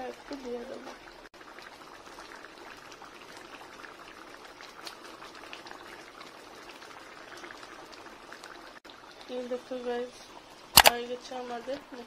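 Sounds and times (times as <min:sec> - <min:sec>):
curry bubbling in a pan: 0:00.0 - 0:12.0.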